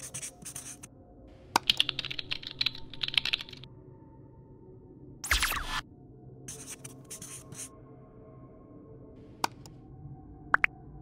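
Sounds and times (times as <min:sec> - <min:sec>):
marker pen scratchy strokes: 0:00.0 - 0:00.9, 0:06.5 - 0:07.7.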